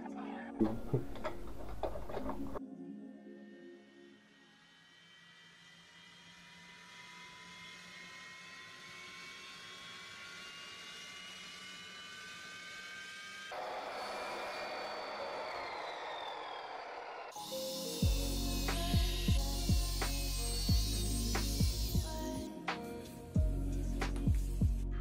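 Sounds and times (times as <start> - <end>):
miter saw motor whine: 3.5 - 23.3
saw blade cutting wood: 4.3 - 22.9.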